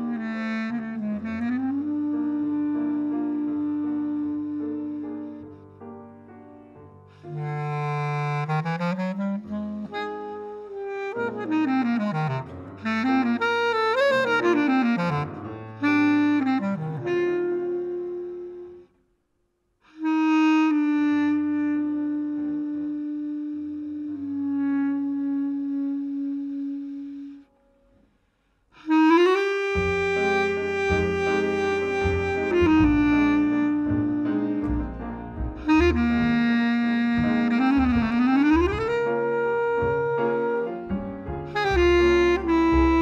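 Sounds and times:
bass clarinet solo: 0.0s - 19.0s, 19.9s - 27.5s, 28.8s - 43.0s
piano and jazz band: 0.0s - 19.0s, 20.0s - 28.1s, 28.8s - 43.0s.

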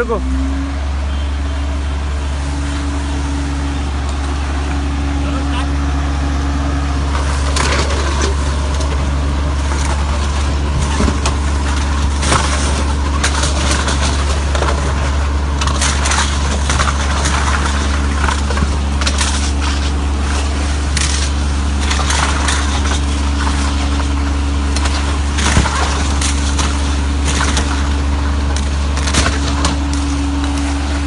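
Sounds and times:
vacuum machine droning: 0.0s - 31.0s
cans and plastic rattling in hose: 7.0s - 31.0s.

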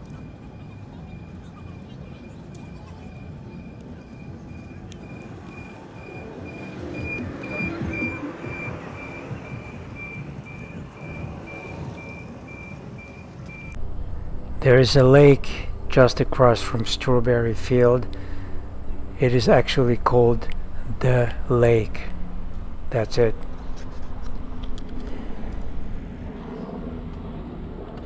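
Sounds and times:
passers-by voices: 0.0s - 13.5s
faint high beeps: 0.0s - 13.8s.

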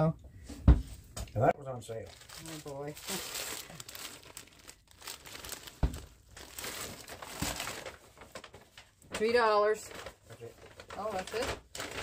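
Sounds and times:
paper bag rustling: 1.9s - 12.0s.

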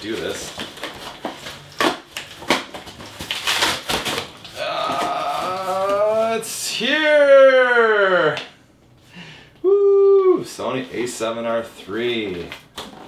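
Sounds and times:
cardboard and tape ripping: 0.0s - 6.4s.

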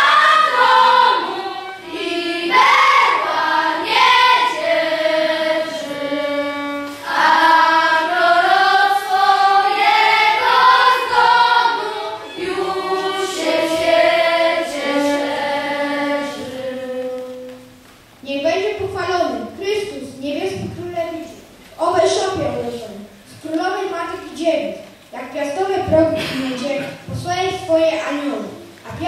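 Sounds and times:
children's choir singing: 0.0s - 17.9s.

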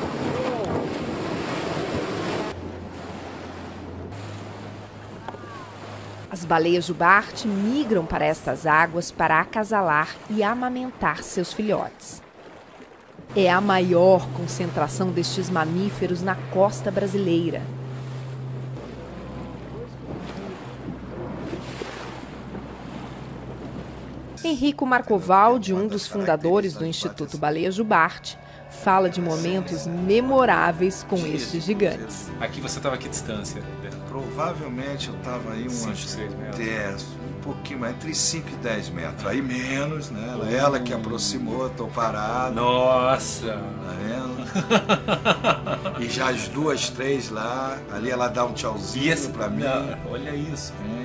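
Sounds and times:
wind buffeting microphone: 0.0s - 6.3s, 17.6s - 24.4s
water rushing and splashing: 0.0s - 51.0s
waves: 0.0s - 51.0s
low steady hum: 13.3s - 32.1s.

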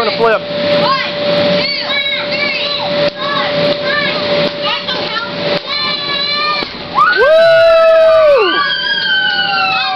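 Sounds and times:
voices whooping together: 6.9s - 9.9s.

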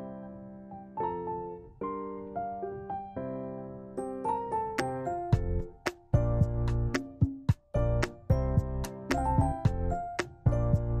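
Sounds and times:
soft piano chords: 0.0s - 11.0s.

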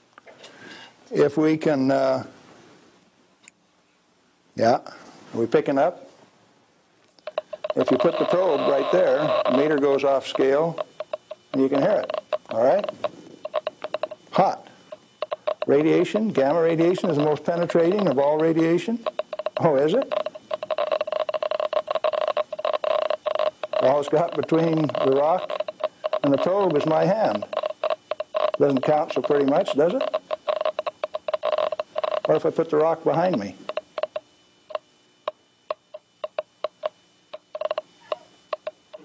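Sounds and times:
radiation meter clicking rapidly: 7.1s - 39.0s.

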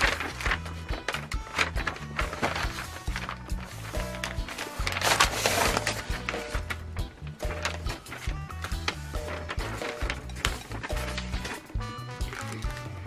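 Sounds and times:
background music with bass line: 0.0s - 13.0s
cellophane packs rustling: 0.0s - 13.0s.

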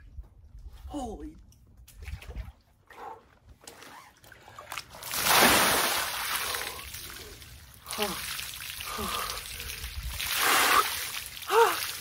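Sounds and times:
water splashing in a tub: 4.2s - 12.0s
water pouring onto the ground: 5.0s - 12.0s.

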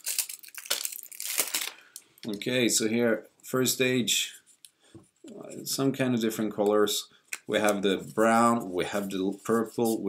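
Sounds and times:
shrink-wrap crinkling and tearing: 0.0s - 2.0s.

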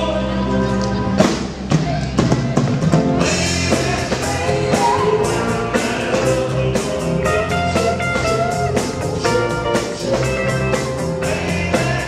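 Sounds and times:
rock band playing: 0.0s - 12.0s
drum kit beating: 1.1s - 12.0s.

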